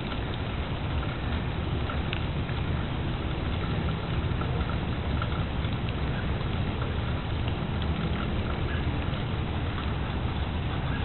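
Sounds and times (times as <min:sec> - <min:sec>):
rain pattering: 0:00.0 - 0:11.0.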